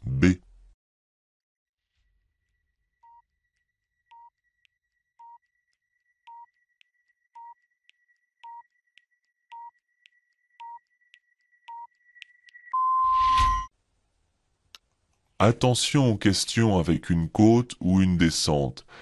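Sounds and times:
short electronic beeps: 0:12.7 - 0:13.7.

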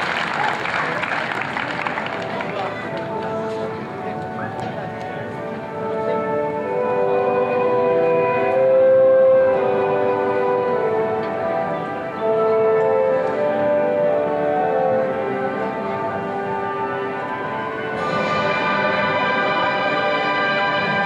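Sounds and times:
orchestral anthem: 0:00.9 - 0:21.0.

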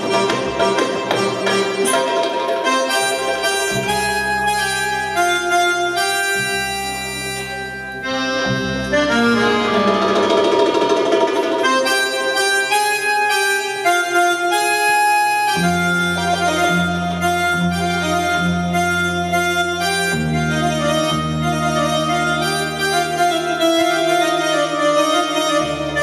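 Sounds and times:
slow accordion melody: 0:00.0 - 0:26.0.

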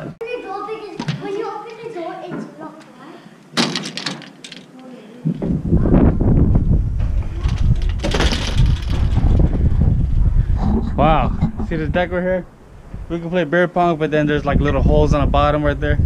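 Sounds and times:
wind buffeting microphone: 0:05.2 - 0:16.0.

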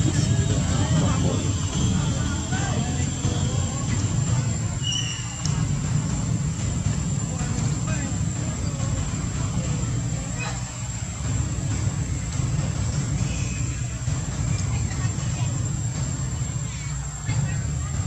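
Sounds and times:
faint voices talking: 0:00.0 - 0:18.0
steady low rumble: 0:00.0 - 0:18.0.

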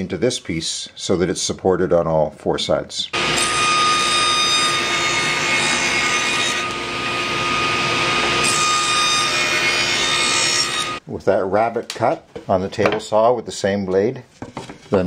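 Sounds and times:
table saw cutting wood: 0:03.2 - 0:11.0.

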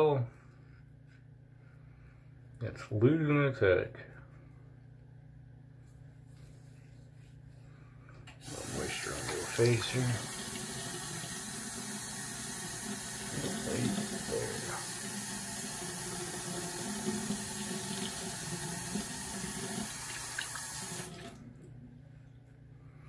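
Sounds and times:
sink tap running: 0:08.4 - 0:21.4.

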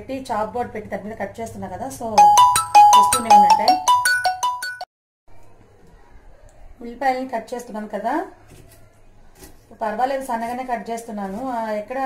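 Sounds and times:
phone ringtone marimba melody: 0:02.2 - 0:04.9
woman talking: 0:02.9 - 0:03.9.

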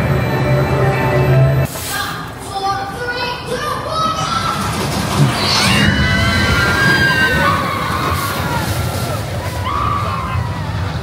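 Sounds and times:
music: 0:00.0 - 0:01.7
roller coaster rumbling on track: 0:02.4 - 0:11.0.

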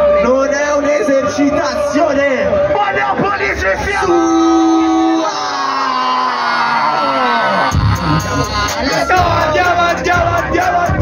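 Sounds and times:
electronic concert music: 0:00.0 - 0:11.0.

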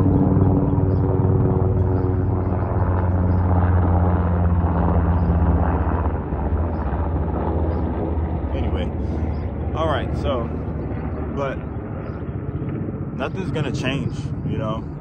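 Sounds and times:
helicopter flying overhead: 0:00.0 - 0:15.0.

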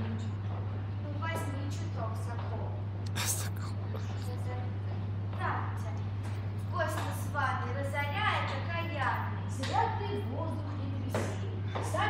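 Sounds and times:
low electrical hum: 0:00.0 - 0:12.0
person whispering: 0:03.1 - 0:04.5
faint voices: 0:03.1 - 0:04.7.

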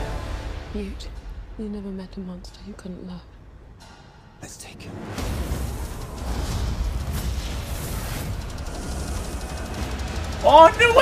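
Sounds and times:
movie trailer music: 0:00.0 - 0:11.0.

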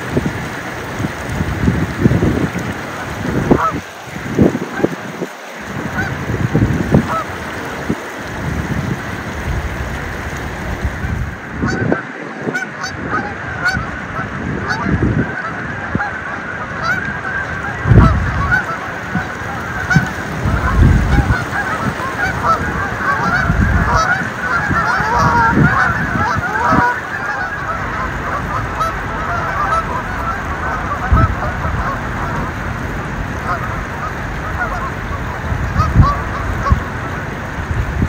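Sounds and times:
geese honking: 0:01.7 - 0:09.3, 0:10.8 - 0:37.5
low rumbles: 0:12.9 - 0:38.0.

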